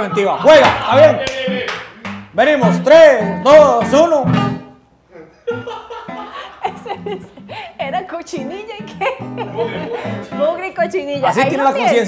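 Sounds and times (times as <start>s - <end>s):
person chuckling: 5.1s - 7.8s, 9.1s - 10.3s.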